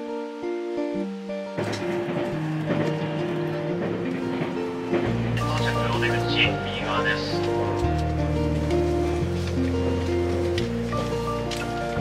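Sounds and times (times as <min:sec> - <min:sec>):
soft background music: 0:00.0 - 0:12.0
train running noise: 0:01.0 - 0:12.0.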